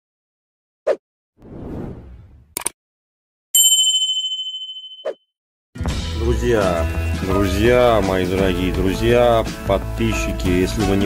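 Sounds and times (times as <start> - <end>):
bright bell-like ding: 3.6 - 5.2
music: 5.8 - 11.0
man's voice: 6.1 - 11.0.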